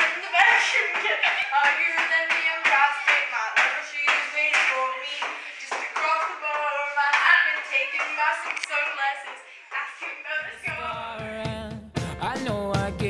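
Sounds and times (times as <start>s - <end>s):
sharp hand claps: 0.0s - 10.2s
girl singing: 0.0s - 11.0s.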